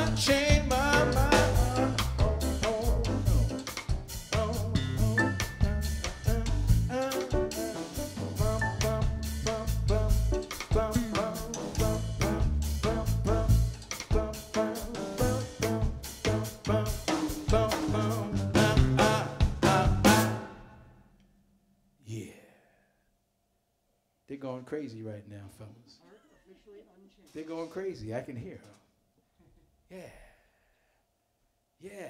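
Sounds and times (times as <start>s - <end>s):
jazz band playing: 0.0s - 20.6s
drum kit: 0.0s - 20.7s.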